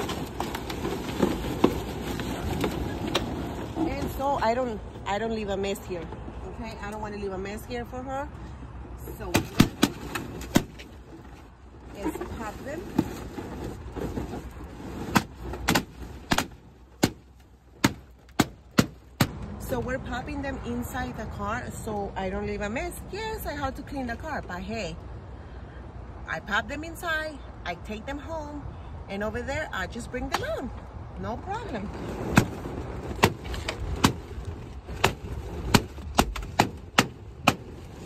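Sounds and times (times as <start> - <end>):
balloons rustling: 0.0 - 4.4, 9.5 - 19.3.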